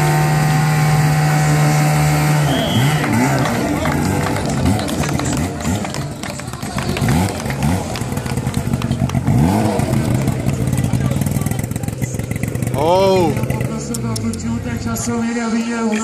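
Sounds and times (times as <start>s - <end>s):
men talking and calling out: 2.4s - 16.0s.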